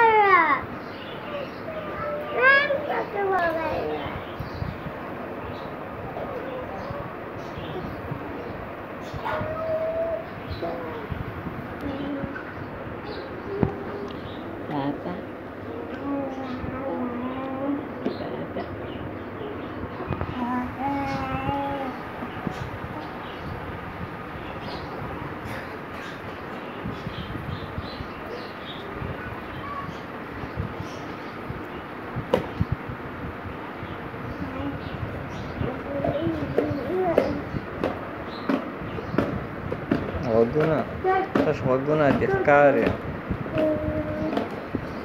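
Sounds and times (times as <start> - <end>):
pigeon cooing: 9.2 - 11.1.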